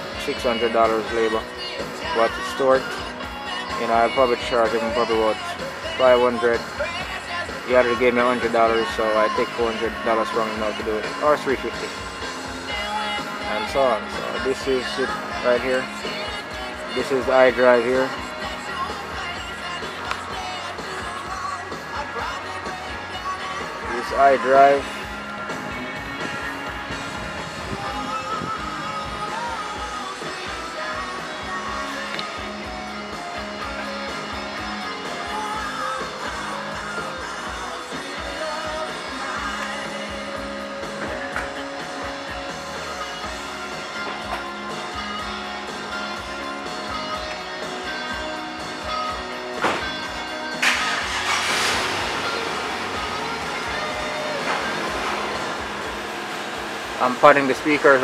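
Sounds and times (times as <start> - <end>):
radio music through car speakers: 0.0 - 58.0.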